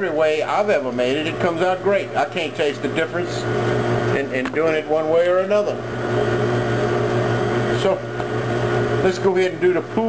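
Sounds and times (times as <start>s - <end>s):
stand mixer motor hum: 0.0s - 10.0s.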